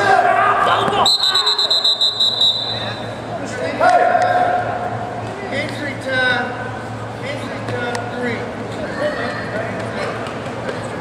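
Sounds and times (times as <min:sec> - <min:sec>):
spectators shouting in a gymnasium: 0:00.0 - 0:03.2
referee's whistle: 0:01.0 - 0:03.1.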